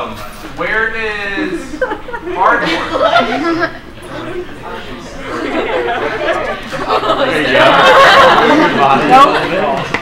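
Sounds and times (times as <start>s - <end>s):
young people talking: 0.6s - 10.0s.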